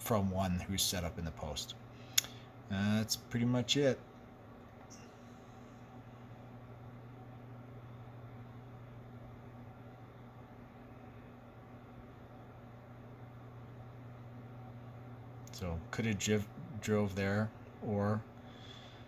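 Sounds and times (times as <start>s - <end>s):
low hum: 0.0s - 19.0s.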